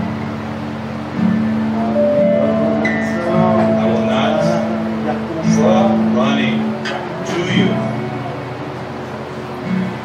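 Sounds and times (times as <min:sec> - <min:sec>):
acoustic guitar chords: 0:00.0 - 0:10.0.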